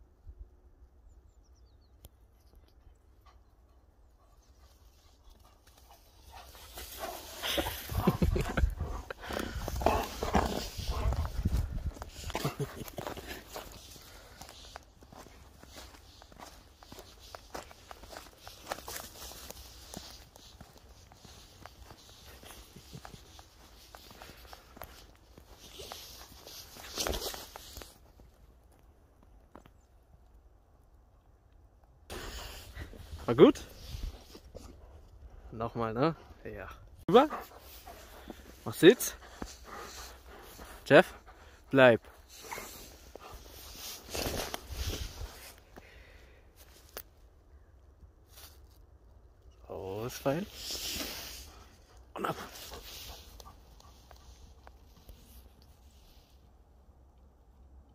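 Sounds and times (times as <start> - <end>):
footsteps crunching through snow: 4.4 - 28.3, 37.2 - 47.1, 48.2 - 48.8, 49.9 - 56.4.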